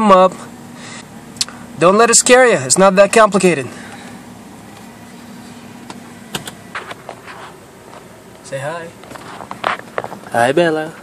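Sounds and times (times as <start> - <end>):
car engine idling hum: 0.0 - 11.0
ventilation noise: 0.0 - 11.0.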